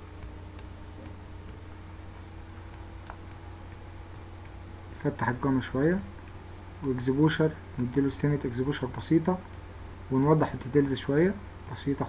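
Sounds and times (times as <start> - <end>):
low electrical hum: 0.0 - 12.0
computer mouse clicks: 2.7 - 4.6.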